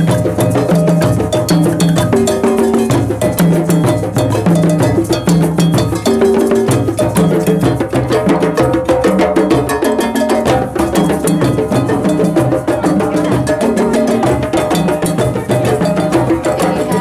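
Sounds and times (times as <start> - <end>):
hand drums playing rhythm: 0.0 - 17.0.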